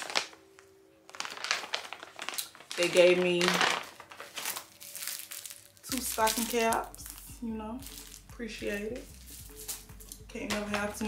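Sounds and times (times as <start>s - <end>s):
plastic bag crinkling: 0.0s - 8.3s, 9.0s - 11.0s.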